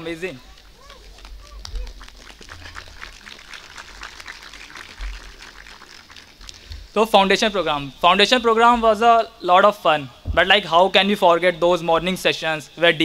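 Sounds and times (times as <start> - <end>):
audience applauding: 0.4 - 7.0.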